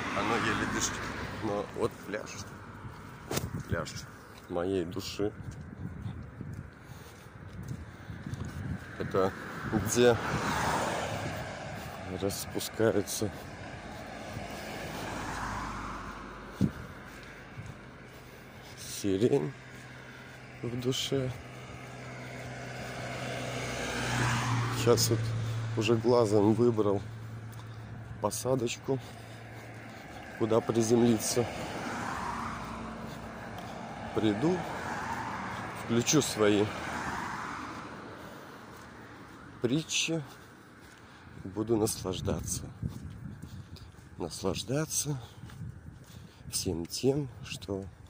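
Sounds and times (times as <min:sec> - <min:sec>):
vehicle passing by: 0:00.0 - 0:48.0.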